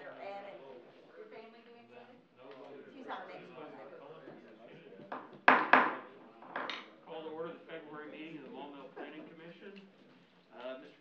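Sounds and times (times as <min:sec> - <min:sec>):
low murmured talk: 0:00.0 - 0:11.0.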